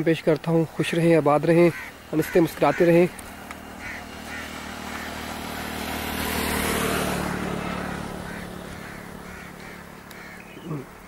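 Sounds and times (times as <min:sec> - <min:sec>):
vehicle passing by: 0:00.0 - 0:11.0.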